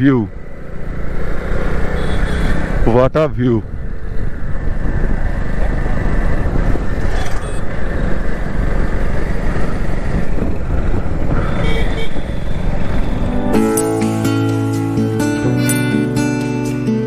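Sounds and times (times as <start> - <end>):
motorcycle engine rumble: 0.0 - 17.0
wind buffeting microphone: 3.6 - 13.4.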